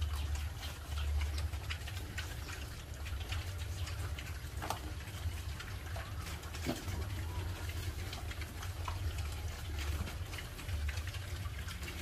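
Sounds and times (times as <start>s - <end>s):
pigs chewing leaves: 0.0s - 12.0s.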